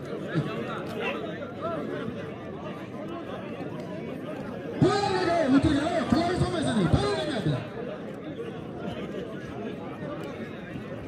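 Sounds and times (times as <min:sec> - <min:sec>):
crowd of men babbling: 0:00.0 - 0:11.0.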